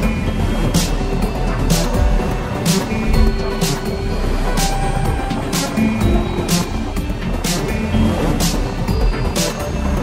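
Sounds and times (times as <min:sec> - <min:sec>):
steady bass: 0:00.0 - 0:10.0
sharp percussive hits: 0:01.7 - 0:08.6.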